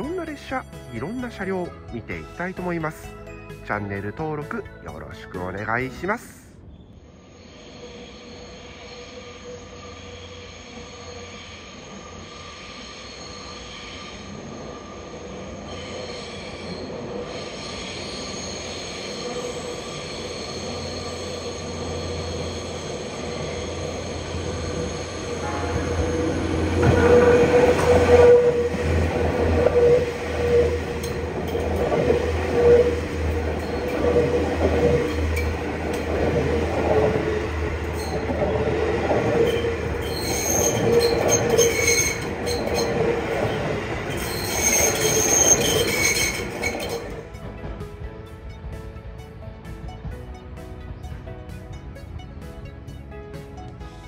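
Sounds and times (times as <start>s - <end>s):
train cars rumbling past: 6.6s - 54.0s
wheel squeal from rails: 6.7s - 47.6s.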